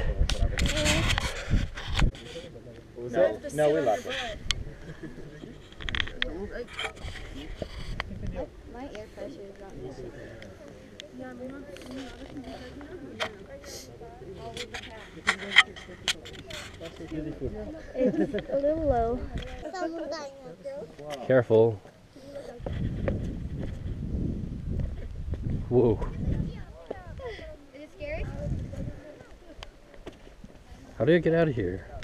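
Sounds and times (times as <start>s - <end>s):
faint voices: 0.0s - 23.1s, 25.8s - 31.0s
low rumbling and rustling: 22.5s - 29.1s.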